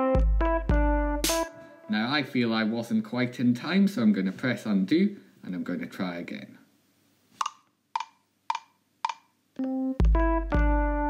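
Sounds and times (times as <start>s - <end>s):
metronome clicks: 7.4s - 10.7s.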